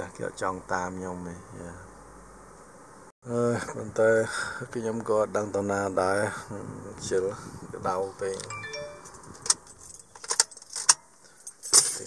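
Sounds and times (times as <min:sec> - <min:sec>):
car keys jangling: 0:08.4 - 0:12.0.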